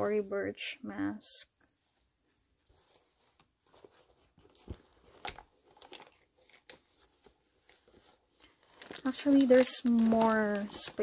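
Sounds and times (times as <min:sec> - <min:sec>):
rustling and crinkling: 0:01.6 - 0:11.0.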